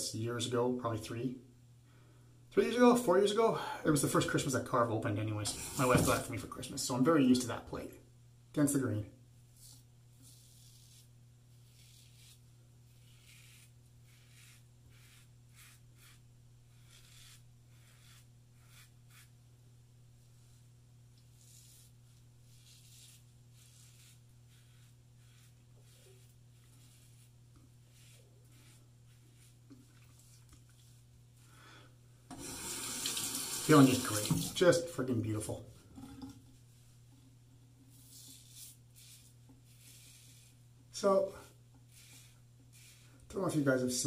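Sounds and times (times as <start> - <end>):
razor scraping stubble: 9.6 - 19.4, 21.2 - 31.0, 37.9 - 41.2
tap running: 34.2 - 34.6.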